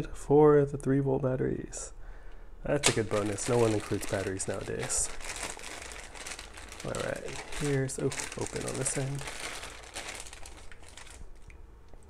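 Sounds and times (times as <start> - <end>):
plastic bag crinkling: 2.8 - 12.0.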